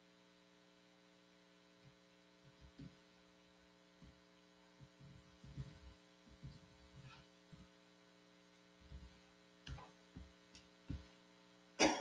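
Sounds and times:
electrical hum: 0.0 - 12.0
soft low thumps: 4.0 - 8.0, 8.6 - 11.4.

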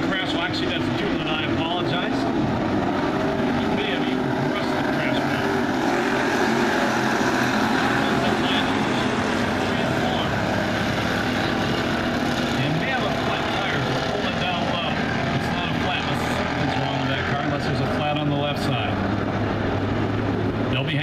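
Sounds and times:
race car engines droning: 0.0 - 21.0.

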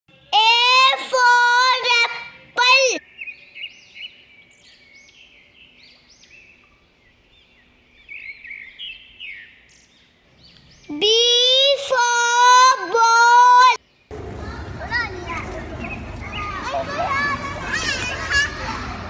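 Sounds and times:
high-pitched voice calling out: 0.3 - 3.0
birds chirping: 1.0 - 12.0, 13.6 - 19.0.

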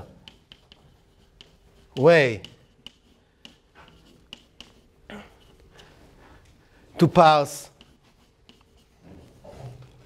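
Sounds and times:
chalk tapping on blackboard: 0.0 - 5.6, 7.4 - 9.4
chalk scratching on blackboard: 0.0 - 5.7, 7.0 - 10.0.

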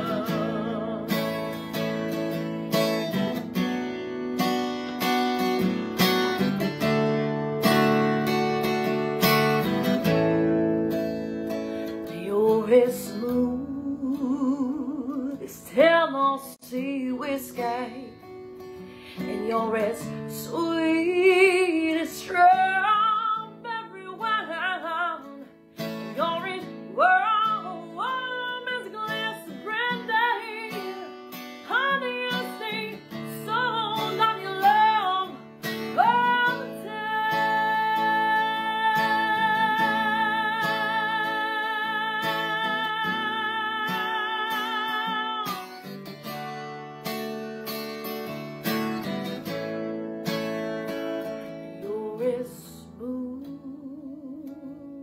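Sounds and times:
woman singing with vibrato: 0.0 - 1.8, 12.0 - 18.3, 19.2 - 45.9, 51.8 - 55.0
acoustic guitar strumming: 0.0 - 53.6.

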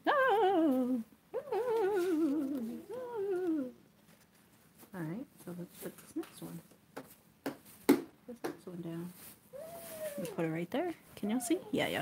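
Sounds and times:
wavering vocal calls: 0.0 - 3.8, 9.5 - 10.4.

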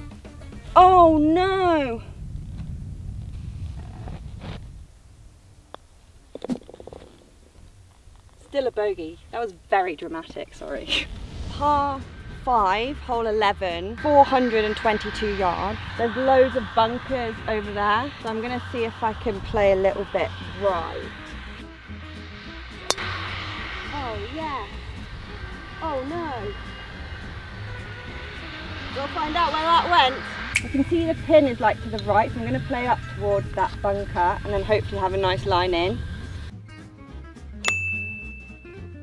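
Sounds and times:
background music: 0.0 - 1.7, 11.2 - 39.0
wind rumble on microphone: 0.0 - 36.6.

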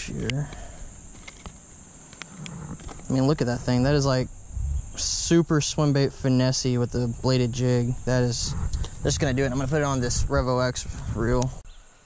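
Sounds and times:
insects buzzing: 0.0 - 12.0.

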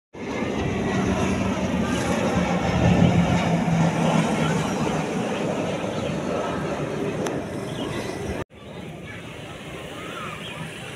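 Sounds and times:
propeller plane droning overhead: 0.2 - 10.9.

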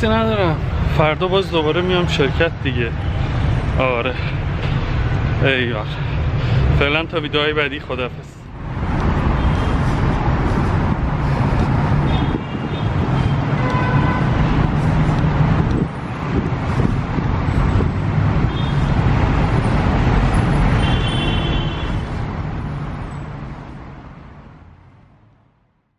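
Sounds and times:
street traffic noise: 0.0 - 25.9.

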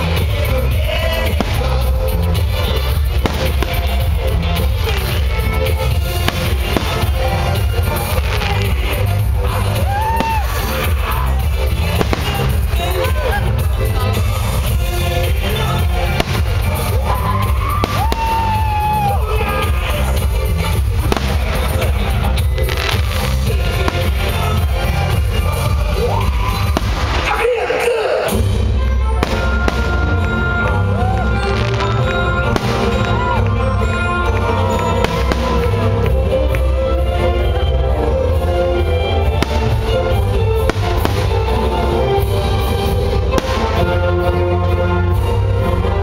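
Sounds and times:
loud bass-heavy music: 0.0 - 46.0
fireworks bangs: 0.1 - 36.8, 39.2 - 44.4.

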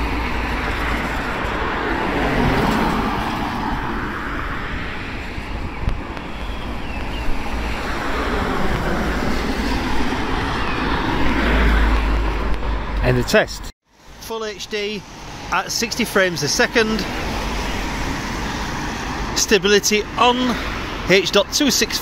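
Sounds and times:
wind rumble on microphone: 0.0 - 13.0
vehicle passing: 0.0 - 13.6
tyres hissing on wet road: 14.0 - 21.1.

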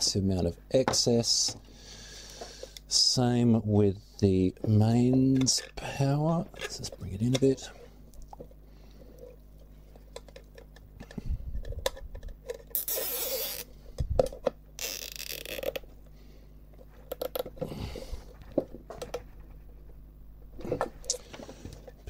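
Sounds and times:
zip tie zipping: 12.7 - 13.7, 14.8 - 15.7
cables clicking and rustling: 16.8 - 22.0.

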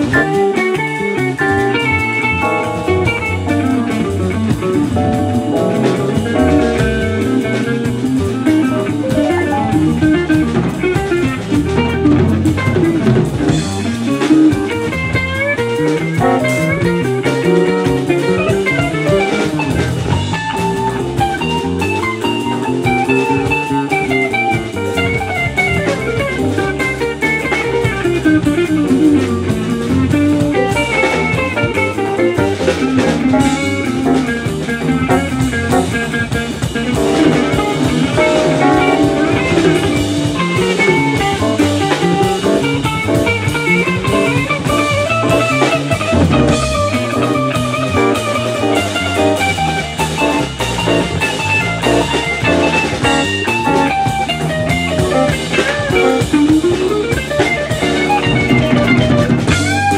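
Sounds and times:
drum kit: 0.0 - 59.9
electric bass: 0.0 - 59.9
electric guitar runs: 0.0 - 59.9.

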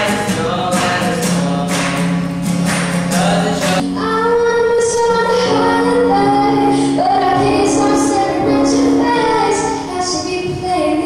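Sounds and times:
musical accompaniment: 0.0 - 11.0
girl singing into a microphone: 3.8 - 11.0.

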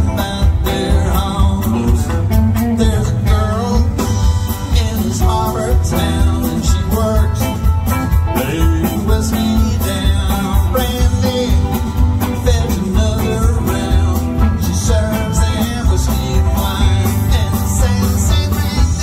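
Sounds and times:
acoustic guitars: 0.0 - 19.0
banjo: 0.0 - 19.0
drums: 0.0 - 19.0
upright bass: 0.0 - 19.0.

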